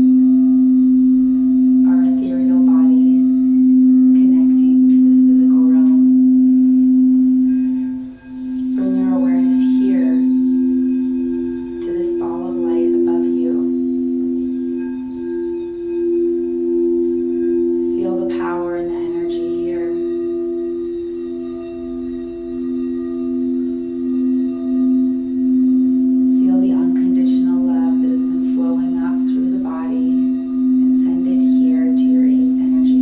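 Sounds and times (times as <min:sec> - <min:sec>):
crystal singing bowl humming: 0:00.0 - 0:33.0.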